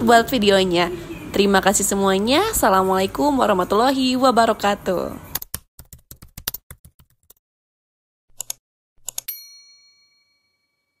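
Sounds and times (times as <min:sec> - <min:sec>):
mouse clicks: 0:08.4 - 0:09.3
bell ding: 0:09.3 - 0:11.0.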